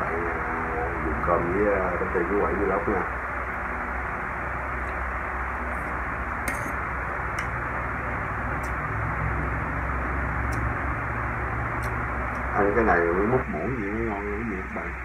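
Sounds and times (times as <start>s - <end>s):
background hiss and hum: 0.0s - 15.0s.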